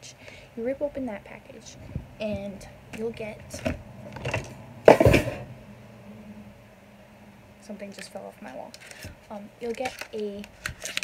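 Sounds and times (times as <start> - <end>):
object falling with a crash: 4.2 - 5.5.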